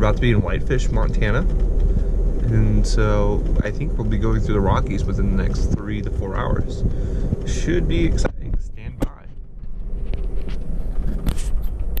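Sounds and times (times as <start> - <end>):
train interior rumble: 0.0 - 12.0.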